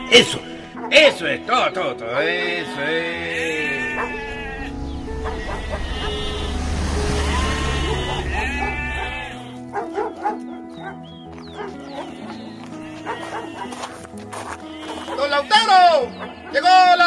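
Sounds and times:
sheep bleating: 0.0s - 1.1s, 2.1s - 9.8s, 11.6s - 17.0s
background music with low drone: 0.0s - 17.0s.

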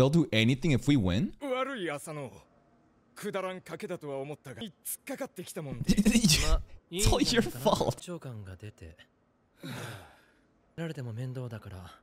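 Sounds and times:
person sighing: 9.6s - 10.3s.

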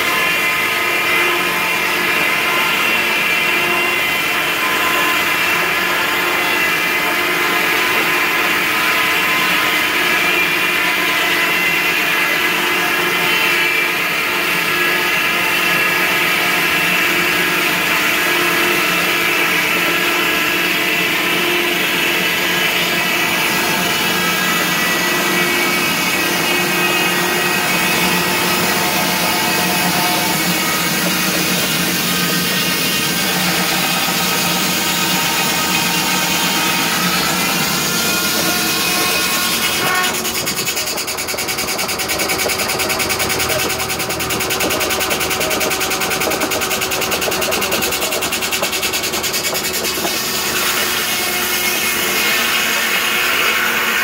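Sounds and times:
saw blade whining through wood: 0.0s - 54.0s.

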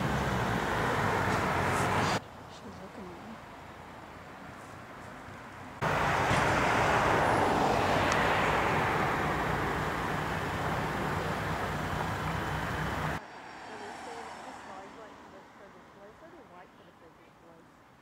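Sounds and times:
loud rushing engine noise: 0.0s - 2.2s, 5.8s - 15.2s.

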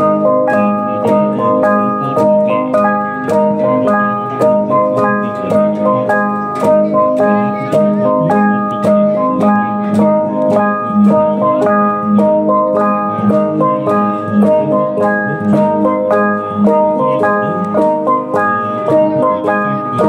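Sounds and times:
gongs struck in interlocking pattern: 0.0s - 20.0s.

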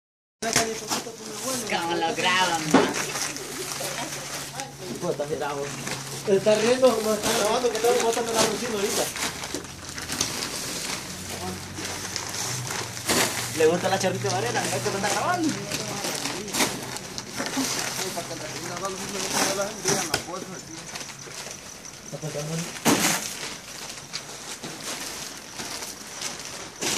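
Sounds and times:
people talking: 0.4s - 9.2s, 13.6s - 21.0s
heavy sacks thumping down: 22.7s - 23.6s.

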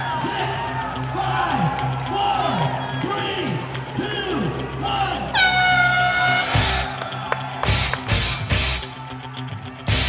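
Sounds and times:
rock music with heavy beat: 3.4s - 10.0s
air horn blast: 5.3s - 7.0s.

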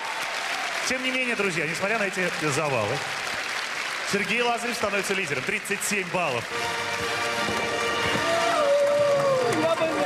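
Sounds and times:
background music: 5.1s - 10.0s.

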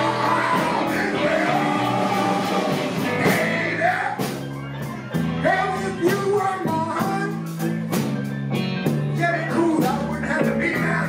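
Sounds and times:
bending lead guitar line: 0.0s - 11.0s
blues band playing: 0.0s - 11.0s.

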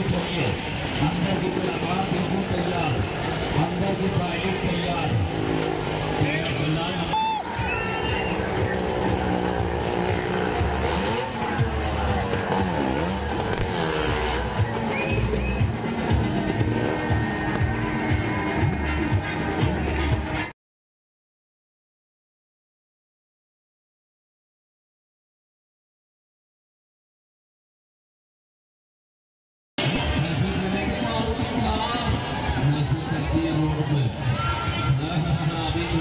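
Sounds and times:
motorcycle engine revving: 0.0s - 20.5s
music playing: 0.0s - 20.5s, 29.8s - 36.0s.

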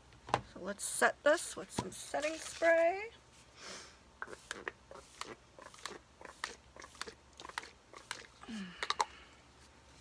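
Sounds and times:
spray pump bottle clicking and hissing: 4.2s - 9.0s.

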